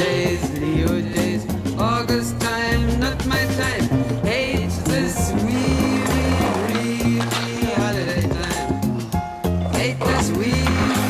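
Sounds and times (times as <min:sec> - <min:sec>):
skateboard wheels rolling on pavement: 0:00.0 - 0:11.0.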